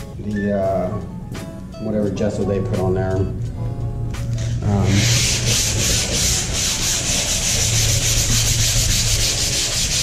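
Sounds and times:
sandpaper rubbing on canvas: 4.7s - 10.0s.

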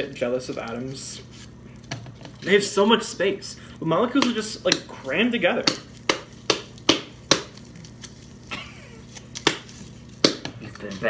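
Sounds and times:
hands slapping dough: 4.0s - 8.1s, 9.1s - 11.0s.

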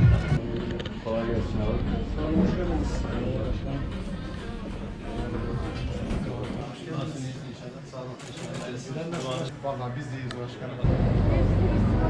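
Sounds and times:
people talking: 1.0s - 12.0s
street noise rumble: 10.8s - 12.0s.

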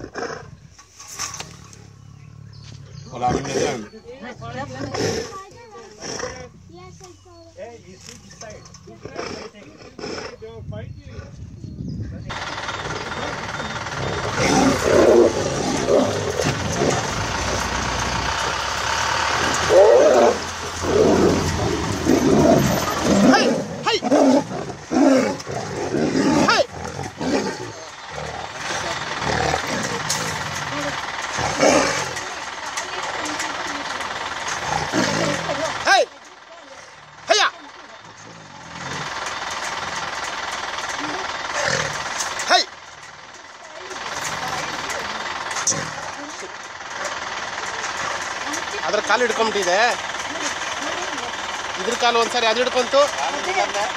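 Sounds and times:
tigers snarling and roaring: 0.0s - 7.0s, 8.1s - 10.5s, 12.2s - 53.9s.

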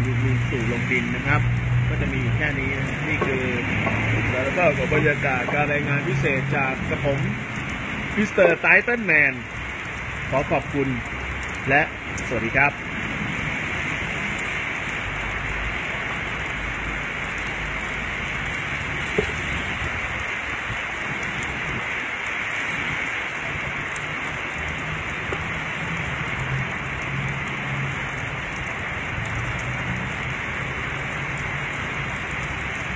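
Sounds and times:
steady rain falling: 0.0s - 32.9s.

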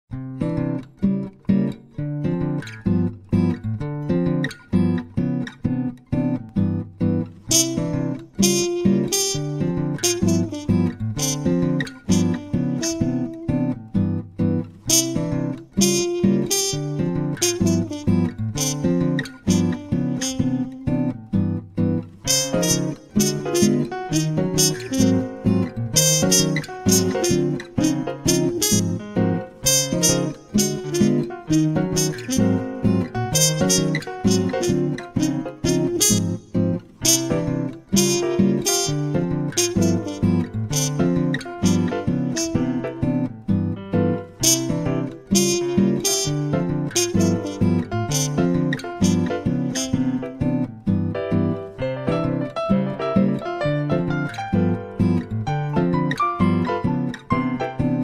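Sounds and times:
acoustic guitar music: 0.1s - 58.0s.

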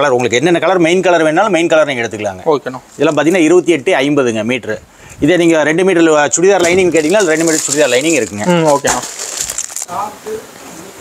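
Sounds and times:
plastic wrapping crinkling: 6.5s - 10.1s.

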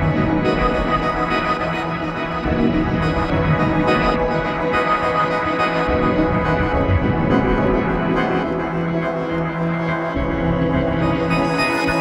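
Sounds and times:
ambient synthesizer drones: 0.0s - 12.0s.

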